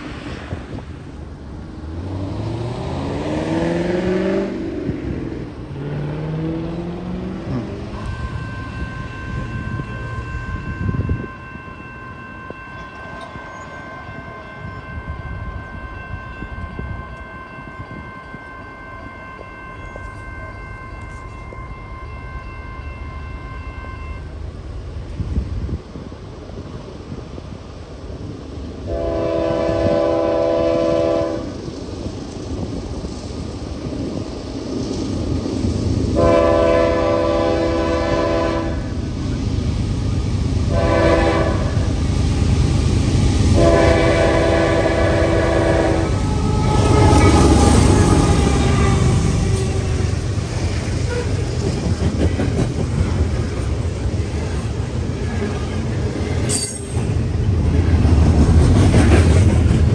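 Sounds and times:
train rumble: 0.0 - 59.9
locomotive horn blasts: 7.6 - 12.9, 28.9 - 31.5, 36.2 - 38.9, 40.7 - 41.9, 43.6 - 50.1, 51.1 - 51.4.

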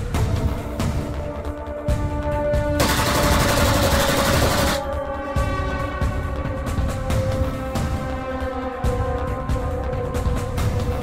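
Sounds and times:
machine-gun fire: 2.8 - 4.9.

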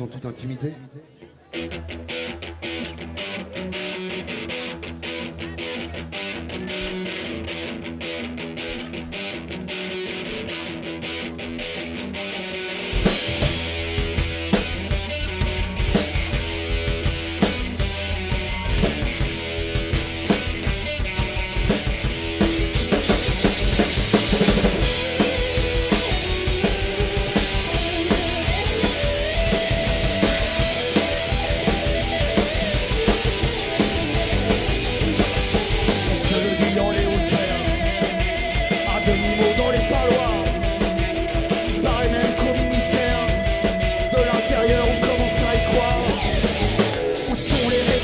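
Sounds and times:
electric guitar: 1.3 - 48.0
rock band playing: 1.5 - 48.0
drum ticks: 11.6 - 48.0.

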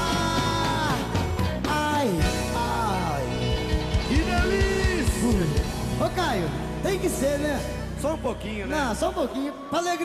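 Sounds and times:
steady drum beat: 0.0 - 6.8
live band music: 0.0 - 10.0.

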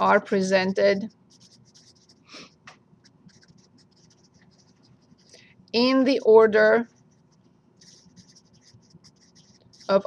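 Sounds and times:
felt-tip marker writing on paper: 0.9 - 5.4, 6.1 - 10.0.

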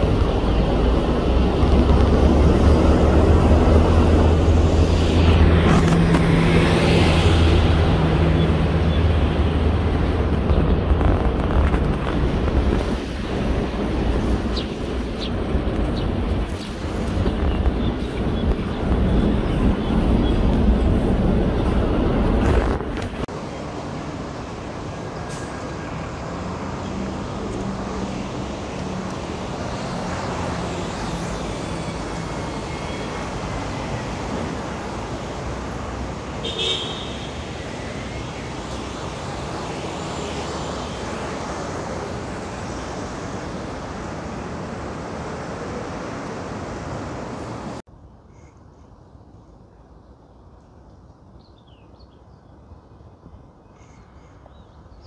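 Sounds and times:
distant traffic noise: 0.0 - 55.0.

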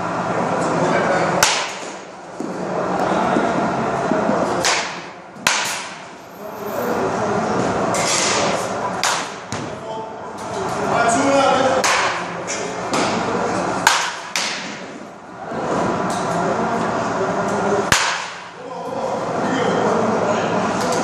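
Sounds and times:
baseball bat hitting balls: 1.4 - 2.6, 4.4 - 6.2, 7.9 - 9.8, 11.8 - 15.0, 17.8 - 18.6.

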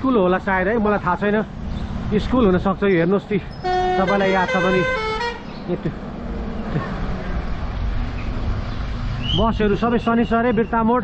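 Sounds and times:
wind and road noise: 0.0 - 11.0
multi-tone vehicle horn: 3.6 - 5.5.

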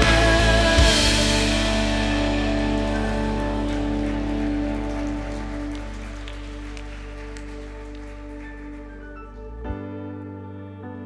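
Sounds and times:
sustained keyboard and bass chord: 0.0 - 11.0.

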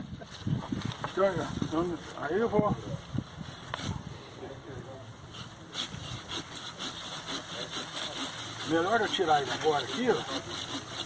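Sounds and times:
pruning saw cutting branch: 5.4 - 11.0.

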